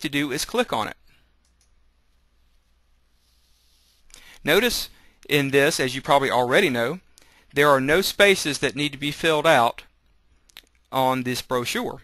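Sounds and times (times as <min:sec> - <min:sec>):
faint computer mouse click: 0:01.4 - 0:01.8.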